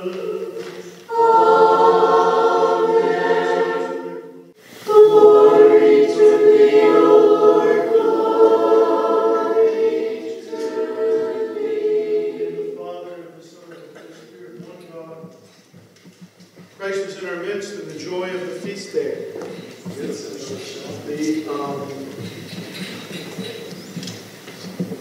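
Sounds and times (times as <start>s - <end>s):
choir singing church chant: 0.0s - 14.5s, 19.1s - 22.3s.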